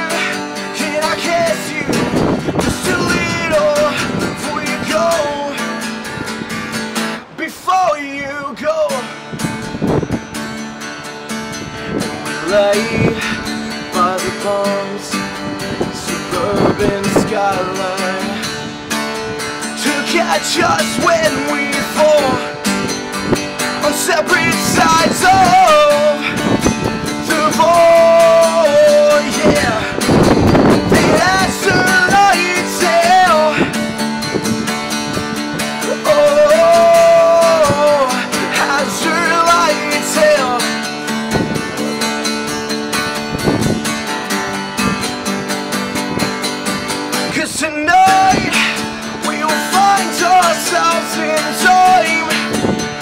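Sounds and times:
man singing: 0:00.0 - 0:05.9, 0:07.2 - 0:09.2, 0:12.2 - 0:18.6, 0:19.6 - 0:22.6, 0:23.6 - 0:33.9, 0:35.7 - 0:41.0, 0:47.1 - 0:53.0
acoustic guitar strumming: 0:00.0 - 0:53.0.

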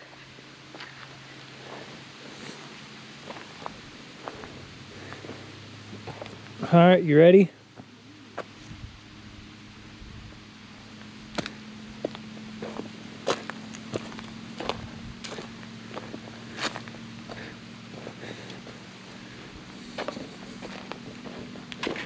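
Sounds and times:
steady low hum: 0:00.0 - 0:22.0
footsteps on dry leaves: 0:00.1 - 0:06.7, 0:10.9 - 0:22.0.

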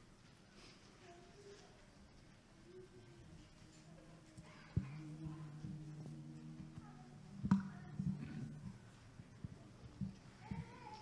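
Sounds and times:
low steady hum: 0:01.0 - 0:11.0.

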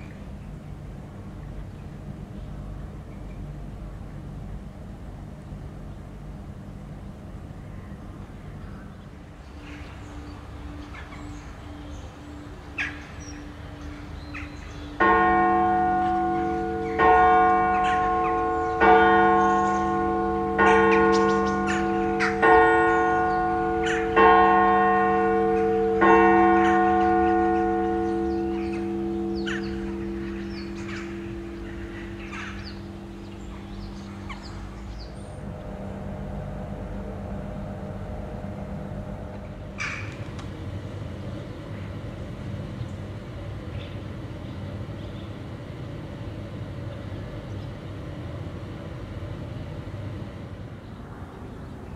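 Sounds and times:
low rumble: 0:00.0 - 0:51.9
faint bird chirps: 0:07.6 - 0:15.0
church bell striking: 0:09.5 - 0:41.2.

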